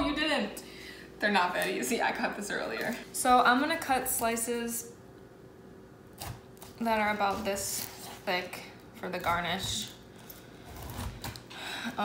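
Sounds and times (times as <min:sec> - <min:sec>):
knife slicing pineapple: 0:06.1 - 0:11.5.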